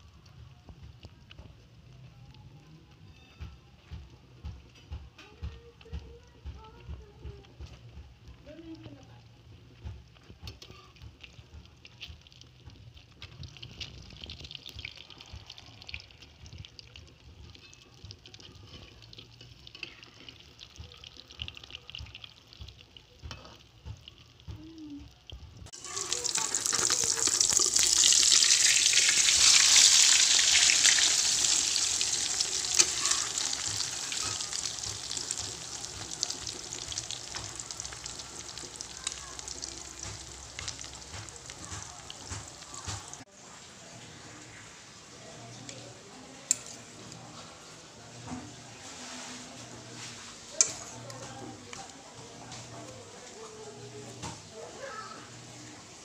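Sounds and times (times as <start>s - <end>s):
omelette sizzling in hot oil: 25.7s - 43.3s, 46.5s - 51.4s.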